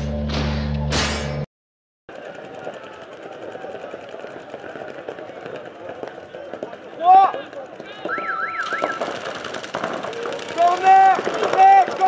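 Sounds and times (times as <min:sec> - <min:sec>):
rapid paintball marker fire: 0:02.1 - 0:08.0, 0:08.6 - 0:12.0
warbling electronic start tone: 0:08.1 - 0:09.2
loud shout: 0:10.5 - 0:12.0.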